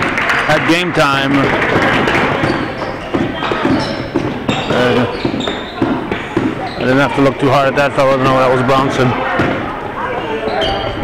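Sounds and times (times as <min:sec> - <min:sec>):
players running: 0:00.0 - 0:09.7
basketball dribbling on gym floor: 0:01.4 - 0:07.3
sneakers squeaking on court: 0:01.5 - 0:07.3, 0:09.2 - 0:11.0.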